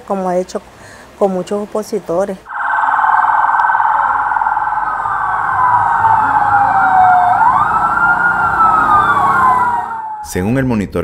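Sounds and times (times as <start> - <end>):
fast warbling siren: 2.5 - 10.3
wailing siren: 2.5 - 10.3.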